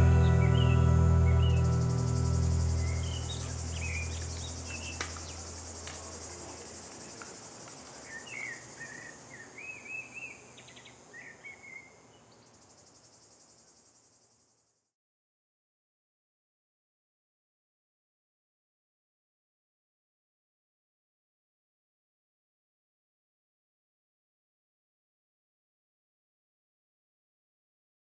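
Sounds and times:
low sustained music note: 0.0 - 5.8
bird chirps: 0.0 - 6.6, 8.0 - 12.5
insects chirring: 0.1 - 14.9.

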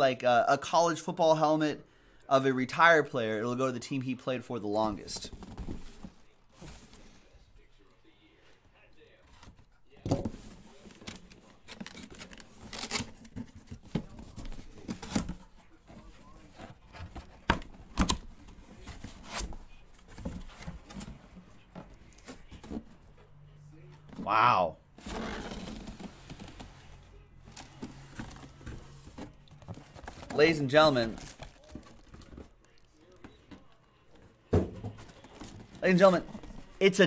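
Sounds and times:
packaging rustling and scraping: 10.2 - 23.1, 25.0 - 37.0
packing tape and cardboard tearing: 11.1 - 13.7.

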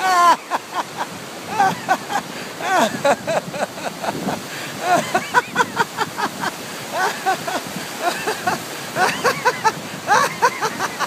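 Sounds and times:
man laughing heartily: 0.0 - 11.0
river rapids rushing: 0.0 - 11.0.

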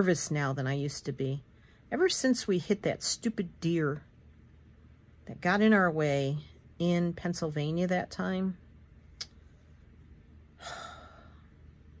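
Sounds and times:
woman inhaling: 10.6 - 11.6.

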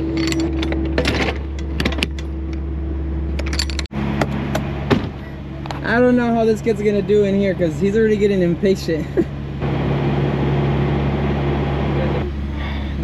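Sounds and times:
metallic clicks and clanks: 0.0 - 2.6, 3.3 - 3.9
steady hum: 0.0 - 13.0
truck engine hum: 0.0 - 13.0.

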